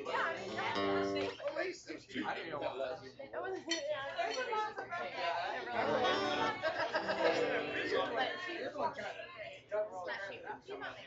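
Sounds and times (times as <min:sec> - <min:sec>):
guitar playing: 0:00.0 - 0:01.4, 0:05.8 - 0:08.3.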